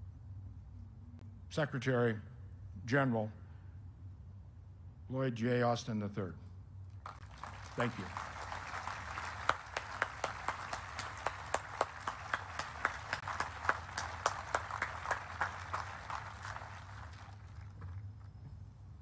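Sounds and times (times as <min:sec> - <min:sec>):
sharp individual claps: 0:07.0 - 0:17.8
large audience applauding: 0:07.0 - 0:18.0.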